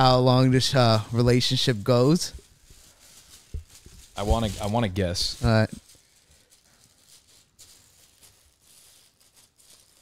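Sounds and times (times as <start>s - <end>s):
faint rustling and handling: 0.0s - 10.0s.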